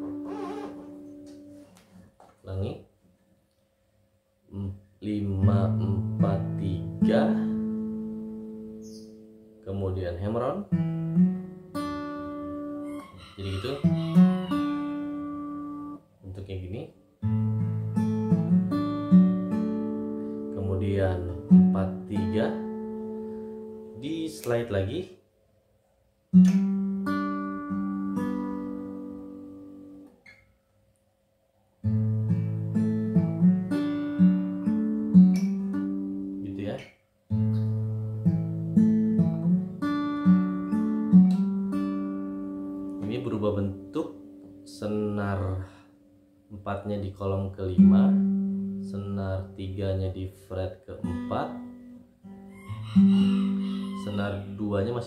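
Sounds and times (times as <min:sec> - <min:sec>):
fingerpicked acoustic guitar: 0:00.0 - 0:02.1, 0:05.2 - 0:09.6, 0:10.6 - 0:13.2, 0:13.8 - 0:16.1, 0:17.2 - 0:24.0, 0:26.3 - 0:30.6, 0:31.8 - 0:46.2, 0:47.6 - 0:49.8, 0:51.0 - 0:53.6.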